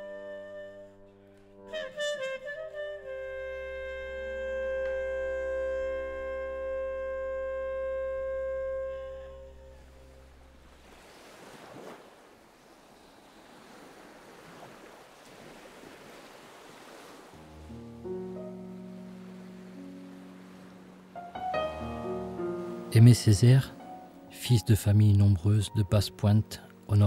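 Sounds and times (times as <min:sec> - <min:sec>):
held musical chord: 0:00.0 - 0:10.8, 0:17.4 - 0:27.0
surf on sandy beach: 0:10.3 - 0:23.0.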